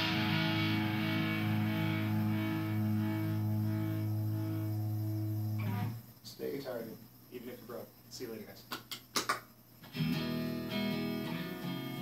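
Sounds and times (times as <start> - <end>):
electric guitar low note ringing: 0.0 - 6.0.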